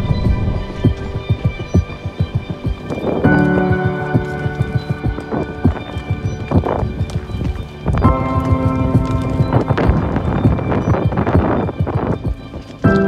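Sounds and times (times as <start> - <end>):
background music: 0.0 - 13.0
horse hooves on stony trail: 0.0 - 13.0.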